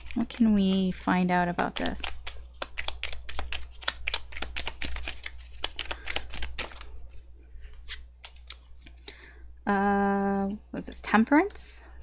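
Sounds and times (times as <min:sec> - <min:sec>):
cards being shuffled: 0:00.0 - 0:09.0.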